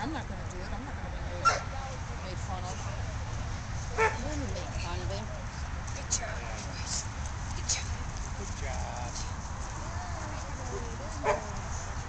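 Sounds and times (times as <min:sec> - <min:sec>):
distant voices talking: 0:00.0 - 0:12.0.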